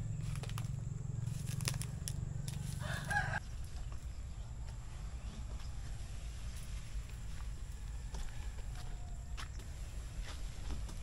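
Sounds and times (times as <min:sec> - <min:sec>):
low steady hum: 0:00.0 - 0:11.0
rooster crowing: 0:02.7 - 0:03.4, 0:07.6 - 0:09.5.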